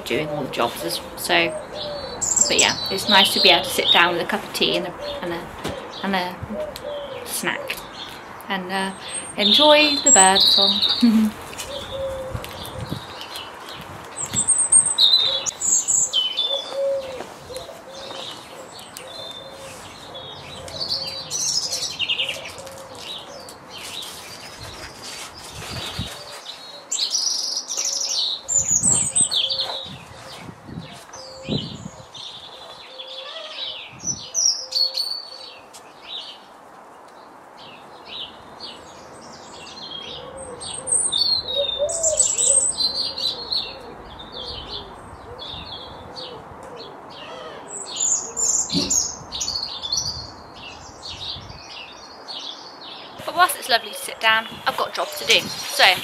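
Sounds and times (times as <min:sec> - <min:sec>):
small birds chirping and singing: 0:00.0 - 0:56.0.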